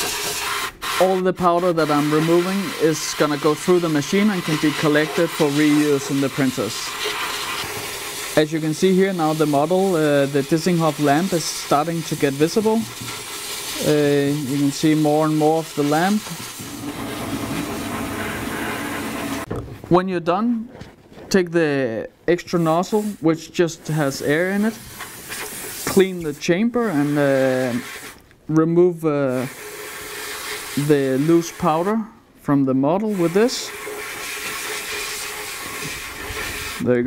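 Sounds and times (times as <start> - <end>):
compressed air nozzle hissing: 0.0 - 19.5, 23.9 - 28.2, 29.3 - 31.9, 33.1 - 36.9
machine hum: 16.6 - 19.6.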